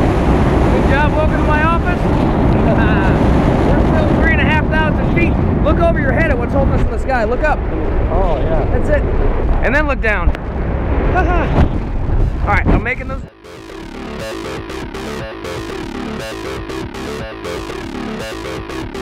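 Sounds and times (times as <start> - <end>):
wind buffeting microphone: 0.0 - 13.3
voices talking: 0.8 - 10.3.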